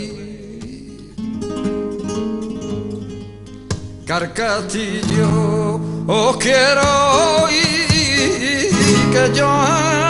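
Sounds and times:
flamenco guitar playing: 0:00.0 - 0:10.0.

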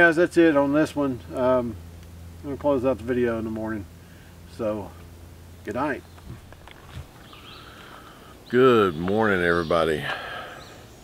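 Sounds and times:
low steady hum: 0:00.0 - 0:11.0
faint high bird calls: 0:06.0 - 0:11.0.

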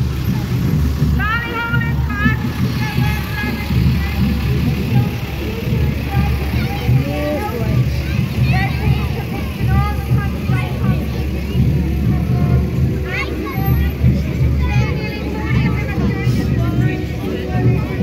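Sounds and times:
children's voices: 0:00.0 - 0:18.0
crowd chatter and calls: 0:00.0 - 0:18.0
lorry engine running: 0:00.0 - 0:18.0.

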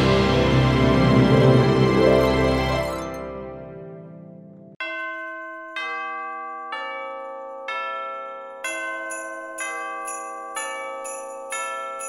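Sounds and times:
background music: 0:00.0 - 0:04.8.

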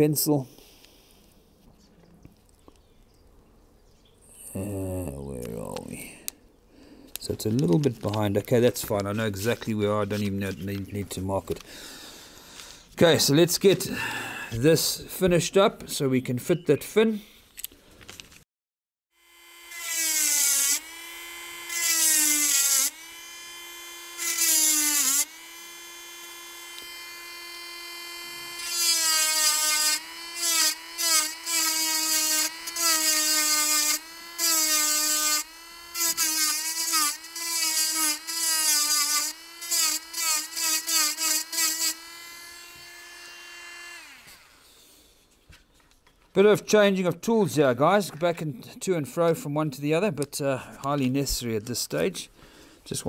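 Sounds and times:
rotary tool cutting wood: 0:07.2 - 0:11.6, 0:19.2 - 0:44.8.

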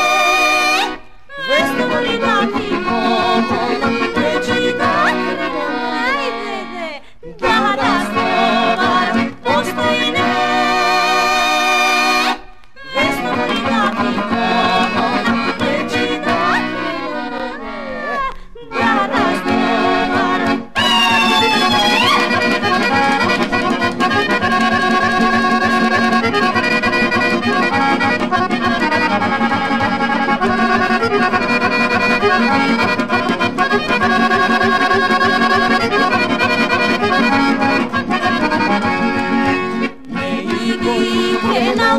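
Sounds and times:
accordion folk music: 0:00.0 - 0:41.9.

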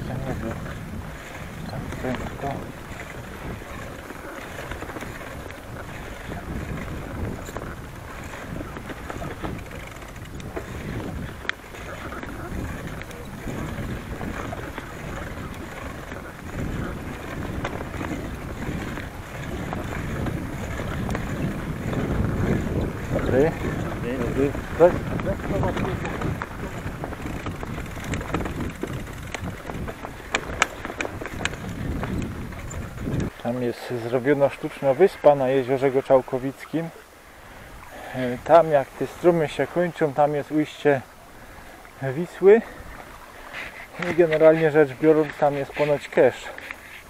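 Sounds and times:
bicycle rolling over bumpy grass: 0:00.0 - 0:36.6
wind buffeting microphone: 0:00.0 - 0:47.0.

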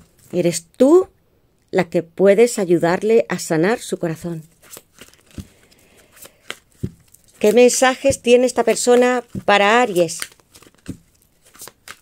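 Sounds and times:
cards flicking and sliding: 0:04.6 - 0:12.0.

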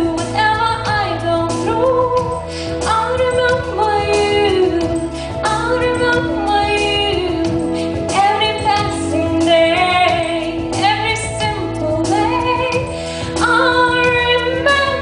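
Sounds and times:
instrumental accompaniment: 0:00.0 - 0:15.0
woman singing into microphone: 0:00.0 - 0:15.0.

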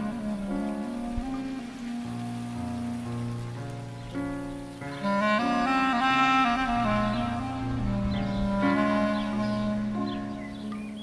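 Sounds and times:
gentle instrumental music: 0:00.0 - 0:11.0
steady rain-like hiss: 0:00.0 - 0:11.0.

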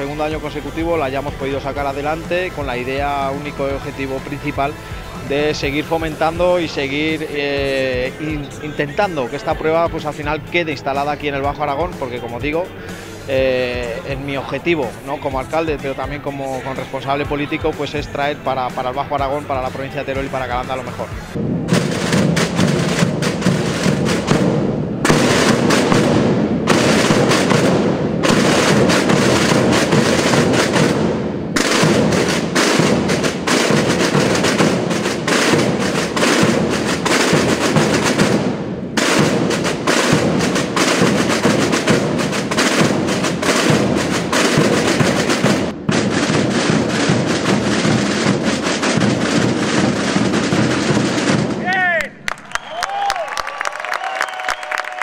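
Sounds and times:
drum band playing loud beat: 0:00.0 - 0:52.2.

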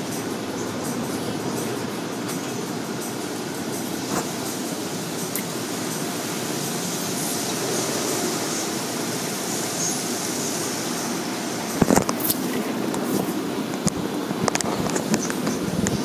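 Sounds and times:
car wash water spraying: 0:00.0 - 0:16.0.

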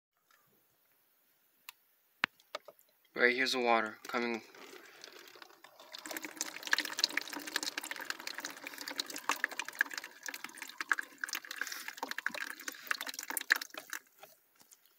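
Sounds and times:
water drips: 0:04.0 - 0:14.9
water trickling into a drain: 0:04.0 - 0:14.9.

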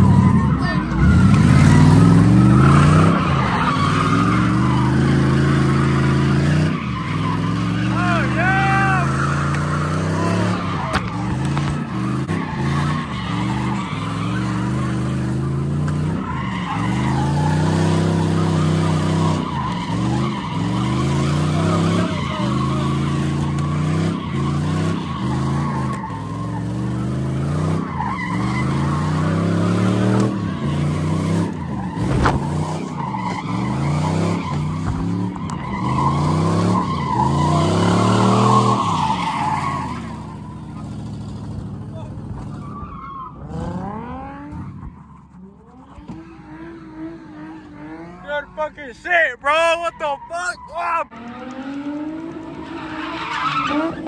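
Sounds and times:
tyres squealing: 0:00.0 - 0:40.9, 0:48.3 - 0:51.1, 0:52.5 - 0:54.0
car engine revving: 0:00.0 - 0:48.9, 0:51.1 - 0:54.0.

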